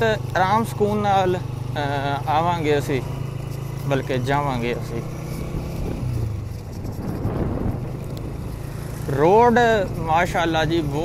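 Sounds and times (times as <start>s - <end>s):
motorcycle engine running: 0.0s - 11.0s
wind rushing over microphone: 5.3s - 11.0s.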